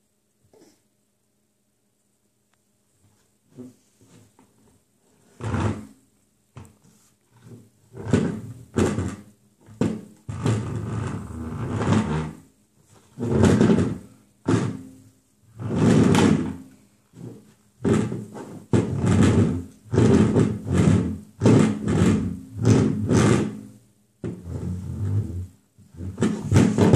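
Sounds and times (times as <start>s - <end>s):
plastic stool scraping on wood: 3.5s - 6.0s, 6.6s - 26.9s.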